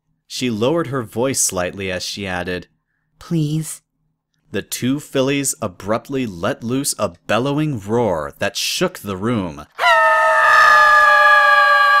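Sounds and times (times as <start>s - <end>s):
high-pitched shrieking cry: 9.8s - 12.0s.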